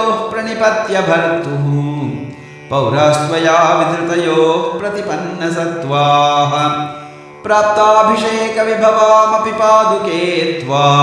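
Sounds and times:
man chanting verses: 0.0s - 11.0s.

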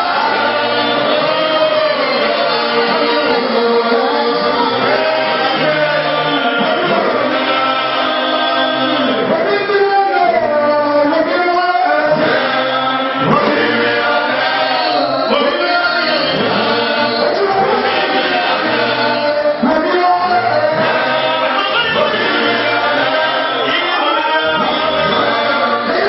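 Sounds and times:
choir singing: 0.0s - 26.0s.

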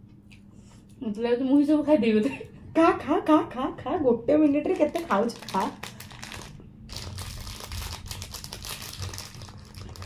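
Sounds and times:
food wrapper crinkling: 4.6s - 10.0s.

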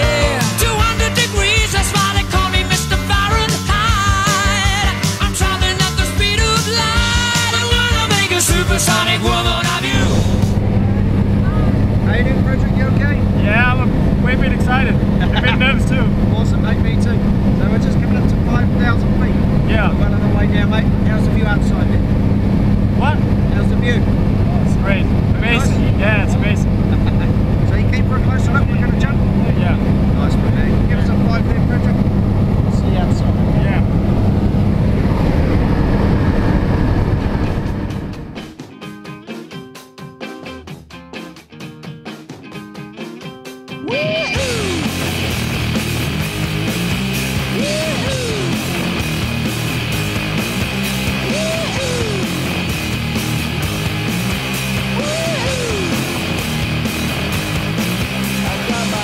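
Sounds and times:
music: 0.0s - 21.8s, 37.5s - 59.0s
airplane engine drone in cabin: 9.9s - 38.4s.

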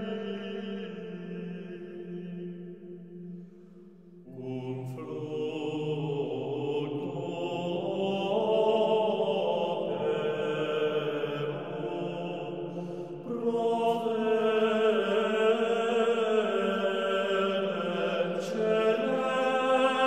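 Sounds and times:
men singing plainchant in unison: 4.4s - 20.0s.

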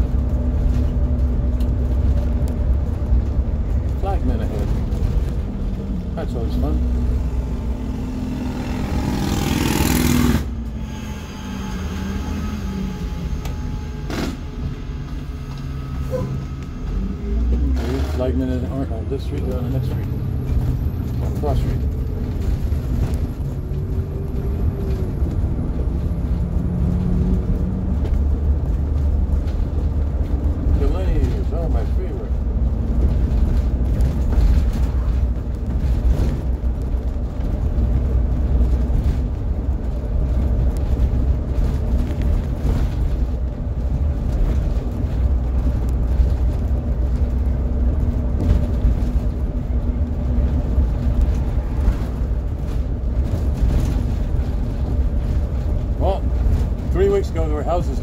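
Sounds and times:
bus engine drone: 0.0s - 58.0s
road rumble: 0.0s - 58.0s.

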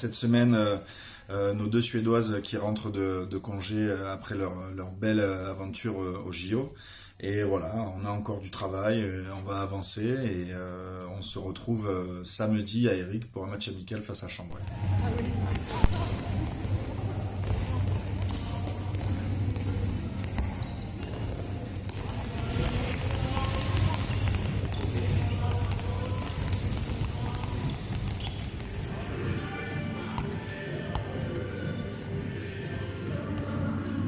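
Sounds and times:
balls bouncing on hall floor: 14.6s - 34.0s
music: 14.6s - 34.0s
players' voices: 14.6s - 34.0s.

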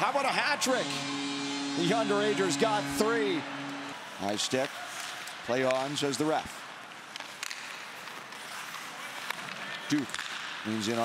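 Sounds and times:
skate blades scraping on ice: 7.3s - 9.9s
stick hitting puck: 9.2s - 10.5s.

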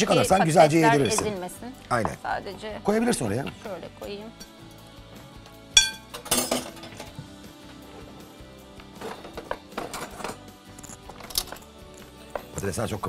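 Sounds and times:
background music: 0.0s - 13.0s
utensils clinking against glass bowl: 0.8s - 1.4s, 5.8s - 7.1s.

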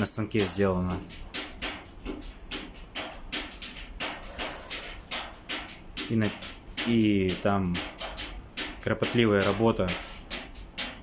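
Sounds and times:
sharp taps and clicks: 0.0s - 11.0s.

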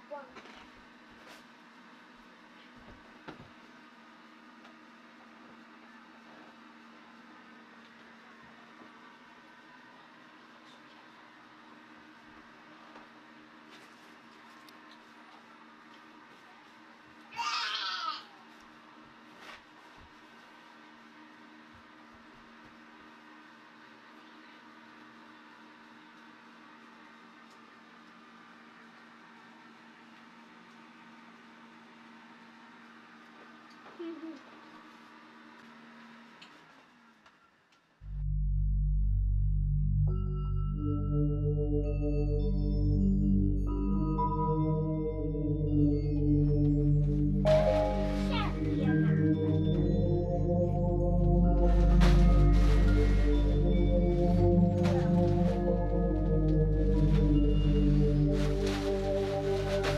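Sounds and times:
blower fan humming: 0.0s - 59.9s
child squealing: 17.4s - 18.4s.

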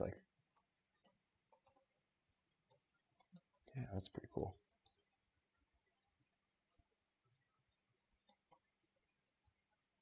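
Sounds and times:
computer mouse clicks: 0.5s - 1.9s, 2.6s - 3.8s, 4.6s - 5.2s, 8.2s - 8.7s.

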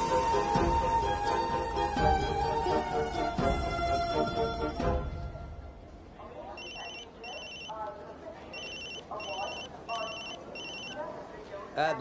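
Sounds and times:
telephone ringing: 6.6s - 7.8s, 8.5s - 11.0s.

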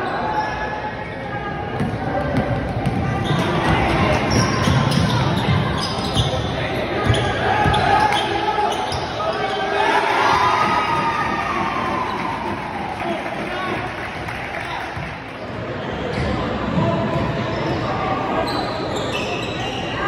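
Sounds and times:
players and spectators shouting: 3.1s - 14.0s.

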